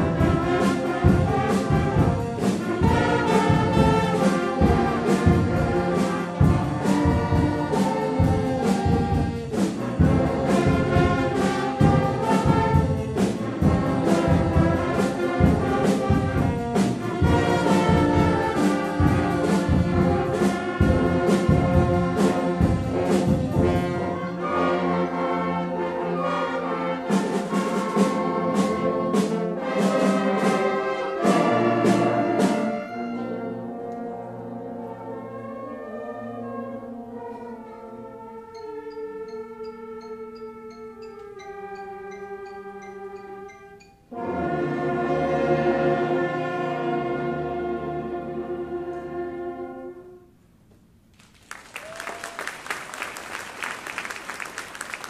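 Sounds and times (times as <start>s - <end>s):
percussion strikes: 0.0s - 24.2s, 38.5s - 44.7s
concert band playing: 0.0s - 37.5s.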